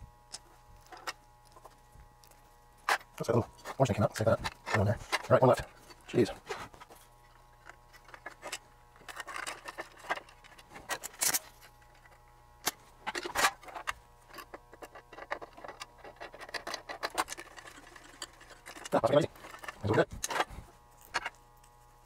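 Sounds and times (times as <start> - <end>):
faint steady hum: 0.0 - 22.0.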